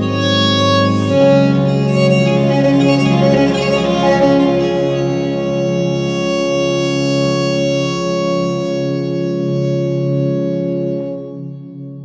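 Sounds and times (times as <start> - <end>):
baroque ensemble with organ: 0.0 - 11.8.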